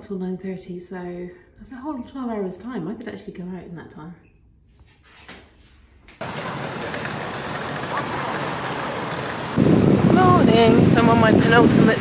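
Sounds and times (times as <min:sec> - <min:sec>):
city street traffic: 0:06.2 - 0:12.0.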